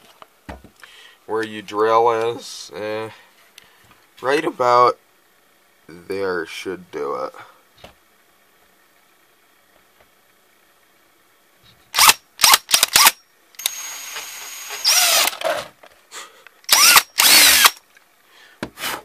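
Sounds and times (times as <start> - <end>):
electric drill boring into plastic: 12.0 - 15.7, 16.7 - 17.8.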